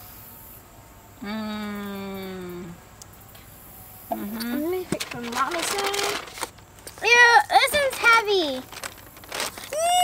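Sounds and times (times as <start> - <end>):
woman humming mmm: 1.2 - 2.8
girl exclaiming: 9.7 - 10.0.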